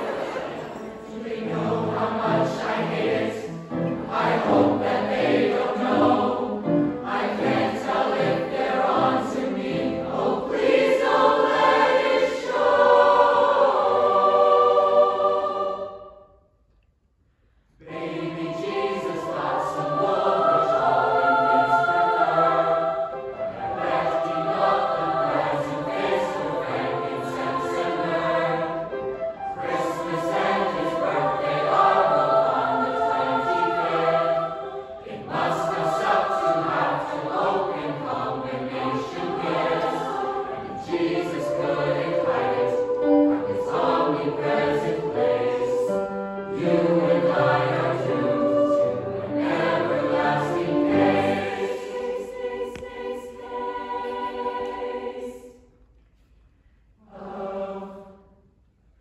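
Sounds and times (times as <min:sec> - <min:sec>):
grand piano accompaniment: 0:00.0 - 0:15.4, 0:17.8 - 0:54.8
mixed choir singing: 0:00.0 - 0:16.3, 0:17.8 - 0:55.8, 0:56.9 - 0:58.4.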